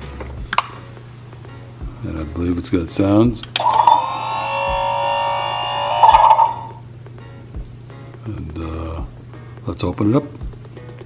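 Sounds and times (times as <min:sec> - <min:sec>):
toy electronic tune: 0:03.6 - 0:06.8.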